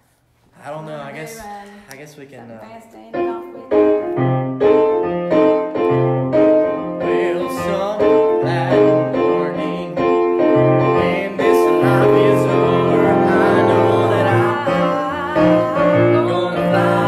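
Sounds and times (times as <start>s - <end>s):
electronic keyboard piano chords: 3.2s - 17.0s.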